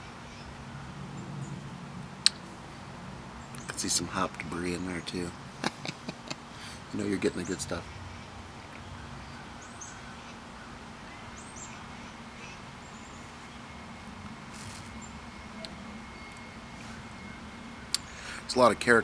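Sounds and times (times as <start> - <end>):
steady low hum: 0.0 - 19.0
thin steady tone: 0.0 - 19.0
faint high bird chirps: 7.2 - 18.4.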